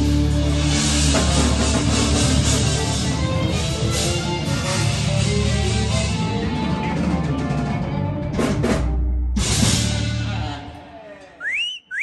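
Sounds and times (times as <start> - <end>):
live band playing instrumental: 0.0 - 10.6
two-part whistle: 11.4 - 12.0.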